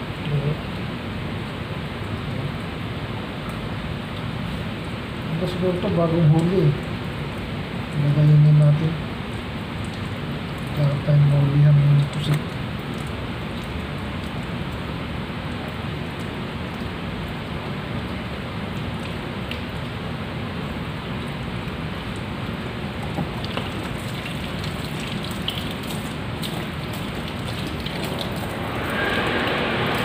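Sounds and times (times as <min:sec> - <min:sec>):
tap water splashing into sink: 0:22.9 - 0:28.5.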